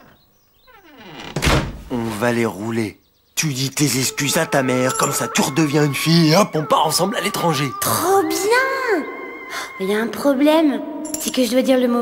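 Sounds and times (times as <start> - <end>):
wooden door creaking: 0.0 - 2.3
door closing with loud thud: 0.8 - 1.9.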